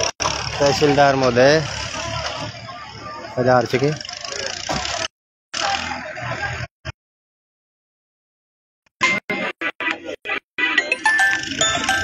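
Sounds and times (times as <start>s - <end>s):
crowd voices outdoors: 0.0s - 7.0s, 9.0s - 12.0s.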